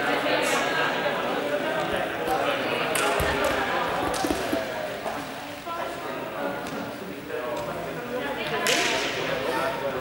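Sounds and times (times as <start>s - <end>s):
indistinct chatter in echoing hall: 0.0s - 10.0s.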